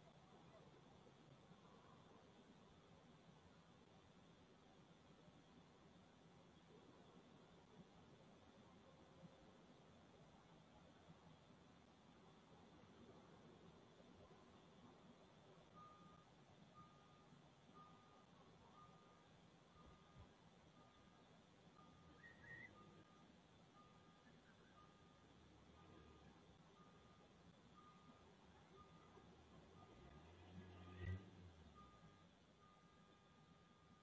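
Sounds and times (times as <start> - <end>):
faint electronic beeps: 0.0 - 34.0.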